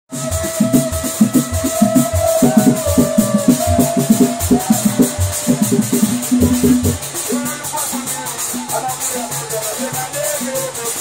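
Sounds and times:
fast drum beat: 0:00.1 - 0:11.0
shakers: 0:00.1 - 0:11.0.

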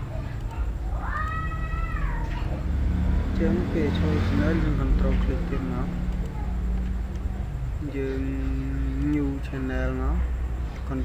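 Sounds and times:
cat meowing: 0:01.0 - 0:02.5.

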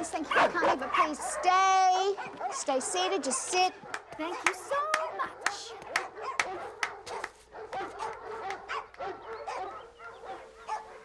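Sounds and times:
dogs barking and yipping: 0:00.0 - 0:11.0.

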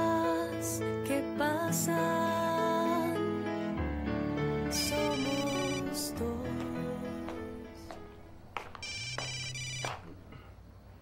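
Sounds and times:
mobile phone ringtone: 0:05.0 - 0:06.0, 0:08.8 - 0:10.0.

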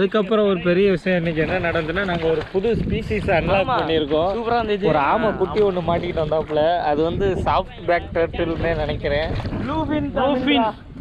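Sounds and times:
man talking: 0:00.0 - 0:10.8
low rumble of pond water: 0:00.0 - 0:11.0
wind on microphone: 0:01.2 - 0:11.0.

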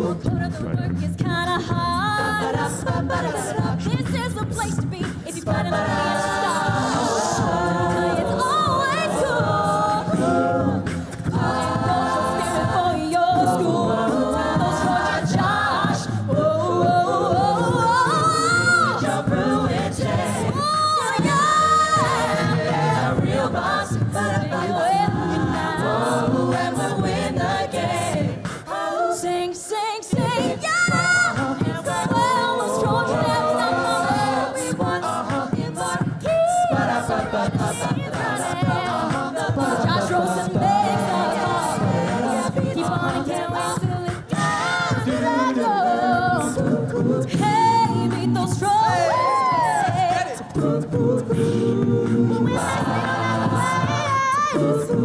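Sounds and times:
a cappella group singing: 0:00.0 - 0:55.0.

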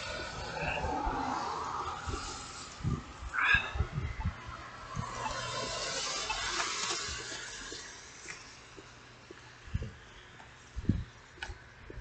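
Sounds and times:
wind buffeting microphone: 0:00.0 - 0:05.8, 0:09.6 - 0:10.0, 0:10.7 - 0:12.0.

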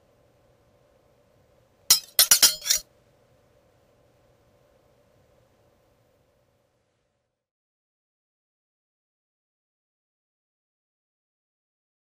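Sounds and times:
sharp ringing clinks: 0:01.9 - 0:02.8.

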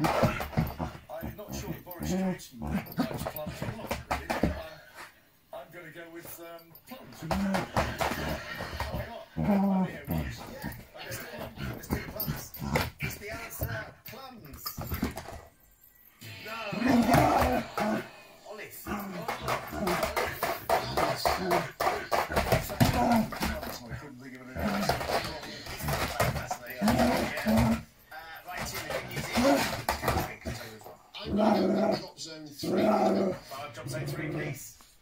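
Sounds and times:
television music: 0:00.0 - 0:35.0
television voices: 0:00.0 - 0:35.0.

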